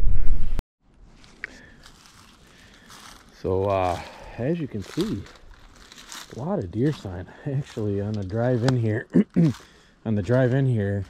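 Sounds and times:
footsteps shuffling through dry leaves: 1.1 - 11.0.

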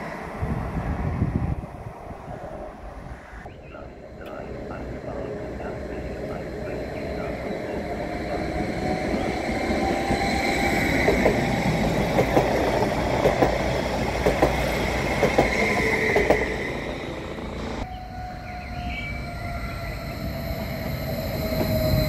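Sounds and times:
electric train running past: 0.0 - 22.0
train whine approaching: 0.0 - 22.0.

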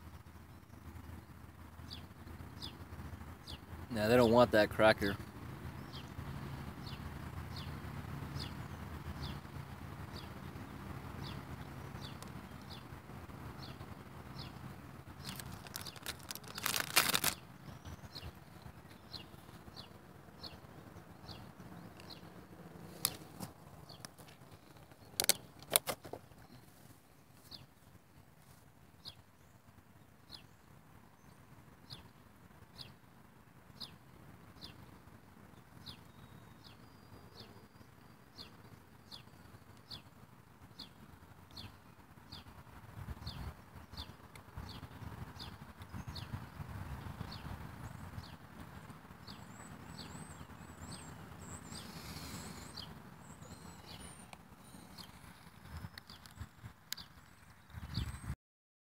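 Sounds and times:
small bird chirping: 5.1 - 27.9, 35.5 - 58.3
sharp clicks and crackles: 15.2 - 17.4, 22.9 - 26.5.

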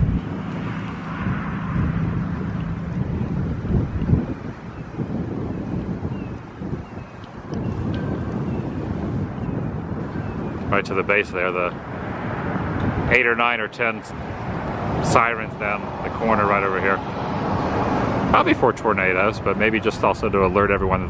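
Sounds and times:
faint engine hum: 0.0 - 13.1
wind buffeting microphone: 0.0 - 21.0.

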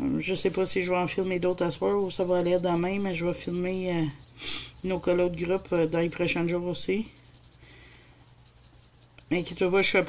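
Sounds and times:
pencil scratching on paper: 0.1 - 10.0.

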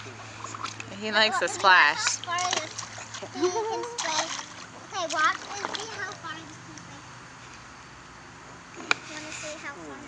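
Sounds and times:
baby's hands splashing water: 0.0 - 6.1
child's high voice: 3.4 - 4.3.

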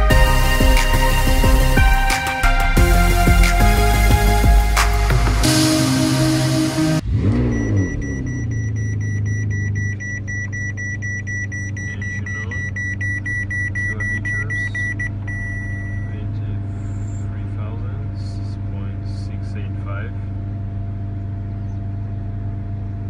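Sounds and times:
car engine starting and idling: 0.0 - 23.0
electronic warning chime beeping: 7.3 - 16.2.

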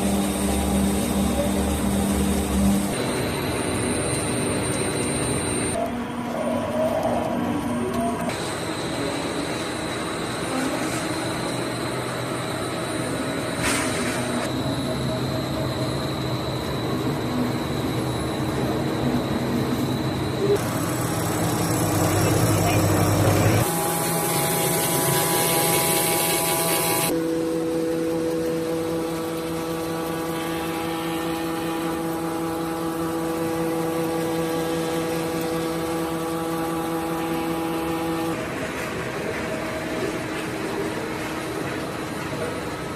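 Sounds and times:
machine hum with motor tones: 0.0 - 42.9.

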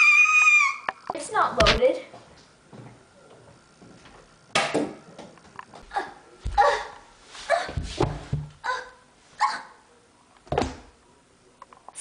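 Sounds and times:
heavy thumps: 7.6 - 8.6.

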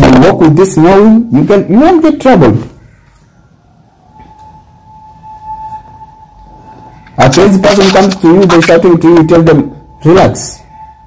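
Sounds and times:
faint steady tone: 2.8 - 11.0.

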